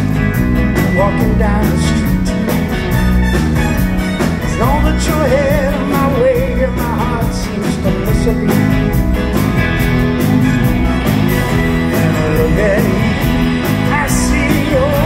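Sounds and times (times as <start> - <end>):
rock band playing: 0.0 - 15.0
wavering lead melody: 0.0 - 15.0.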